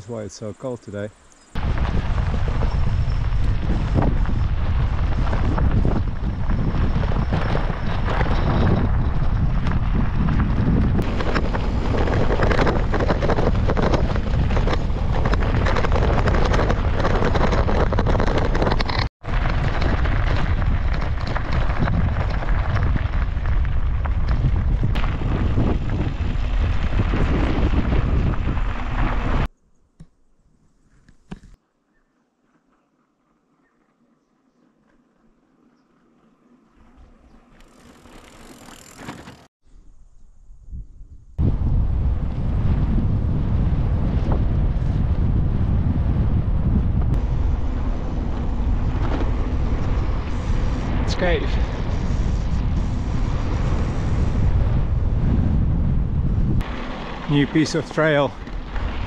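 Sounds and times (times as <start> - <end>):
bicycle tyres rolling on gravel: 1.6 - 29.5, 32.3 - 39.5, 41.4 - 59.0
wind rushing over microphone: 1.6 - 29.5, 40.4 - 59.0.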